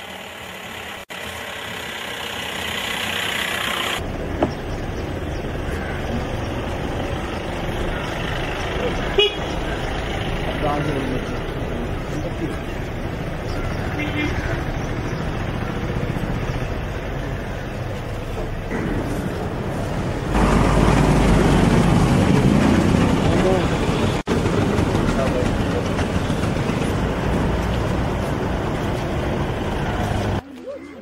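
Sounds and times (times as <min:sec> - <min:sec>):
traffic noise: 0:00.0 - 0:31.0
people's voices: 0:28.1 - 0:31.0.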